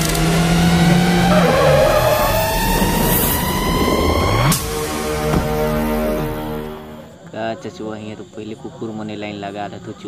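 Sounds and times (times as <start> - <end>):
vehicle engine revving: 0.0 - 6.8
soundtrack music: 0.0 - 7.0.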